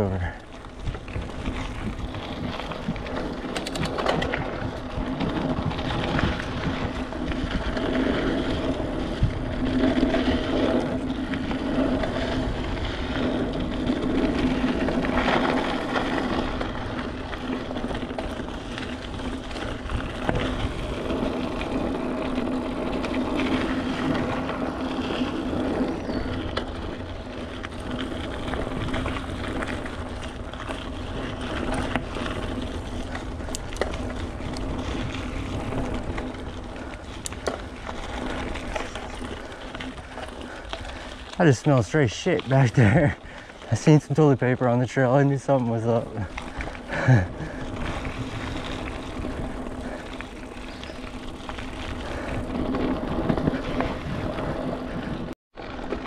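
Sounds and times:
bike rattling over bumps: 0:00.0 - 0:56.0
bike tyres rolling on dirt: 0:00.0 - 0:56.0.

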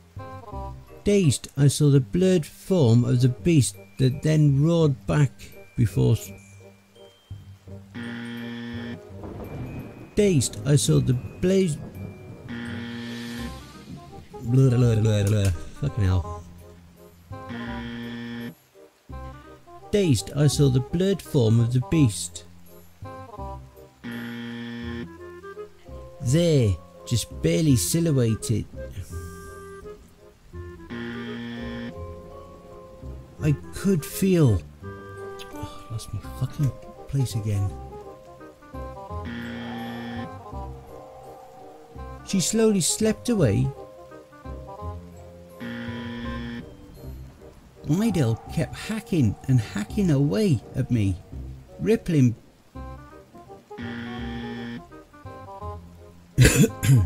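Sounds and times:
sustained background music tones: 0:00.0 - 0:57.0
man coughing: 0:56.4 - 0:57.0.

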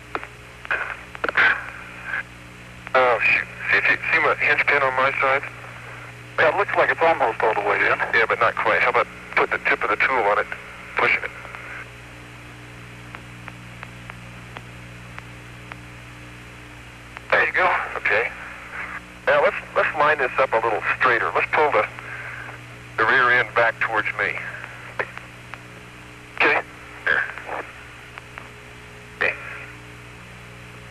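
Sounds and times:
low electrical hum: 0:00.0 - 0:30.9
radio static hiss: 0:00.0 - 0:30.9
short vocal sounds over radio: 0:00.7 - 0:02.3, 0:26.4 - 0:27.8, 0:29.2 - 0:29.8.

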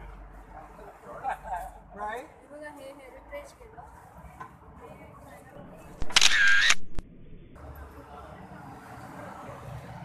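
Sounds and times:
faint outdoor background noise: 0:00.0 - 0:10.0
camera shutter sound effect: 0:06.0 - 0:07.0
sharp click: 0:06.0 - 0:07.0.

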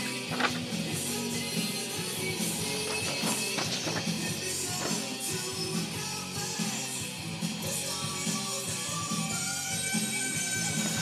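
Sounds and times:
heavy metal music from a record: 0:00.0 - 0:11.0.

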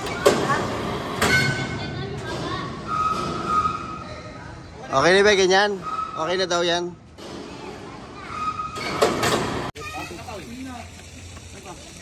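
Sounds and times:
metallic squeal: 0:02.8 - 0:04.5, 0:05.5 - 0:06.7, 0:08.2 - 0:09.2.

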